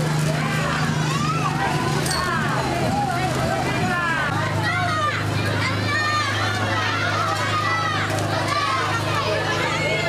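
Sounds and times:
children shouting: 0:00.0 - 0:10.0
low engine hum: 0:00.0 - 0:10.0.

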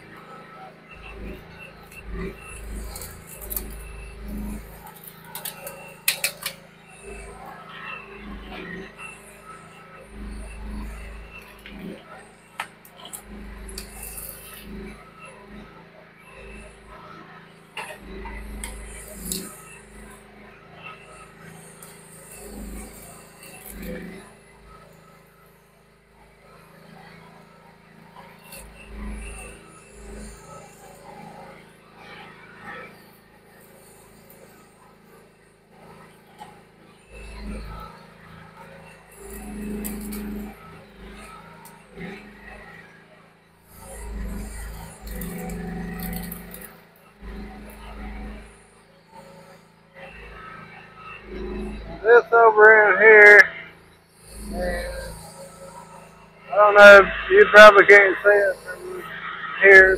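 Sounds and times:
excavator engine running: 0:00.0 - 0:31.8, 0:32.4 - 0:59.9.

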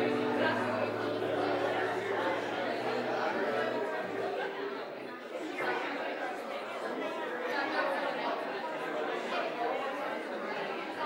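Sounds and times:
crowd chatting: 0:00.0 - 0:11.0.

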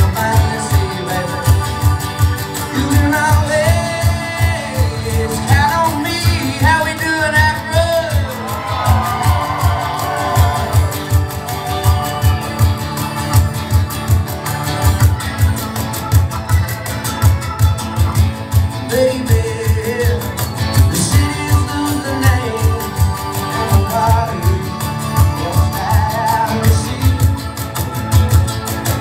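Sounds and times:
person singing: 0:00.0 - 0:12.7, 0:18.6 - 0:27.9
amplified guitars holding notes: 0:00.0 - 0:29.0
live band music: 0:00.0 - 0:29.0.

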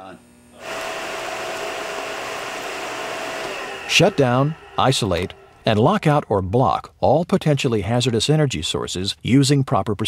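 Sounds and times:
industrial machinery whirring hum: 0:00.1 - 0:06.3.

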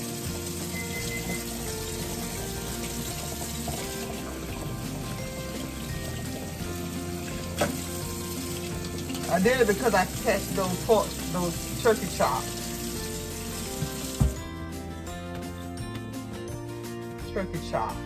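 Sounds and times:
background music: 0:00.0 - 0:18.0
tap running into steel sink: 0:07.3 - 0:09.3, 0:13.6 - 0:14.4.

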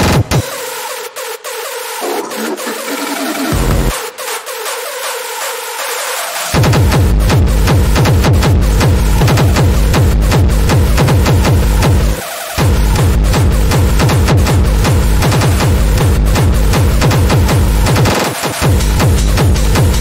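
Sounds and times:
fast hard techno: 0:02.0 - 0:04.5.

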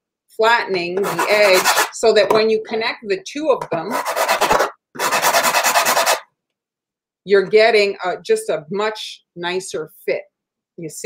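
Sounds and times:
cookie rasping on a zester: 0:01.0 - 0:02.0, 0:03.9 - 0:06.2.

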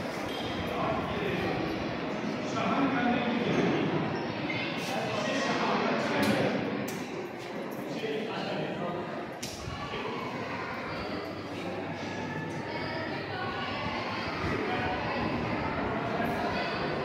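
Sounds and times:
indistinct voices echoing: 0:00.0 - 0:17.0.

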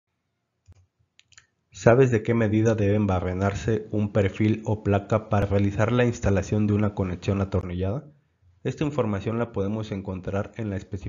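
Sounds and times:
person speaking: 0:01.8 - 0:11.0.

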